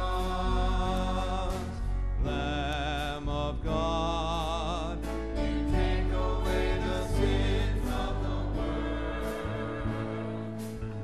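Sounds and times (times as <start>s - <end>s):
choir singing a slow hymn: 0.0s - 1.8s, 5.1s - 11.0s.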